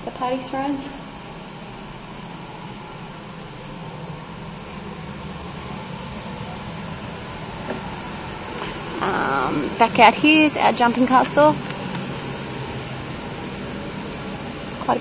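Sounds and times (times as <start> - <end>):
mechanical fan running: 0.0 - 15.0.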